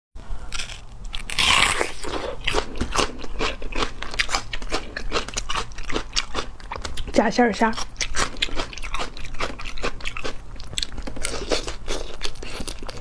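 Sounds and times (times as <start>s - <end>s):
crunching and chewing raw onion: 0.2s - 13.0s.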